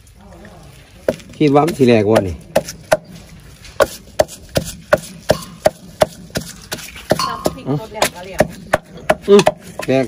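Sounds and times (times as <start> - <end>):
pestle pounding in clay mortar: 1.0 - 3.2, 3.8 - 10.0.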